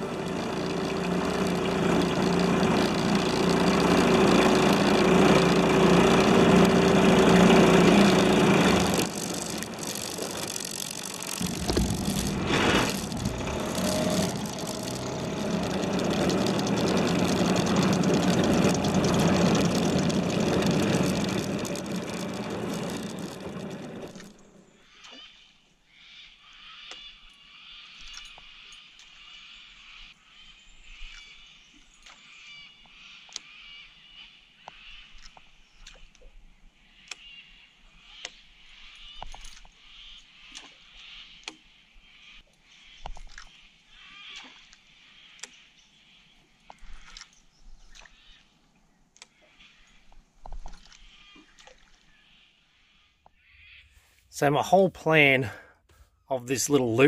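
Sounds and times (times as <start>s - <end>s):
water rushing past hull: 0.0s - 24.7s
outboard motor running: 0.0s - 24.9s.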